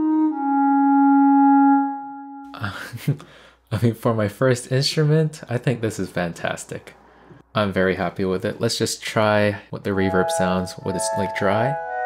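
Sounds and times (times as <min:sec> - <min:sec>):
clarinet notes: 0:00.0 - 0:02.6, 0:10.0 - 0:12.0.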